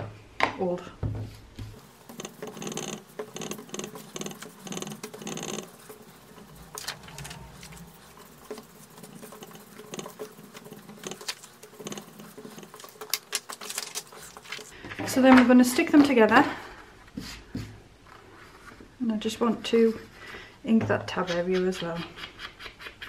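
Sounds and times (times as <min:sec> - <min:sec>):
foam tool rubbing on cardstock: 0:01.8 - 0:14.8.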